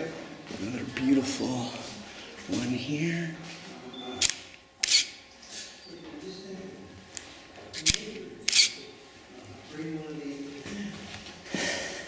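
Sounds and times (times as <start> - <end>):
camera shutter click: 4.2 - 5.2, 7.8 - 8.8.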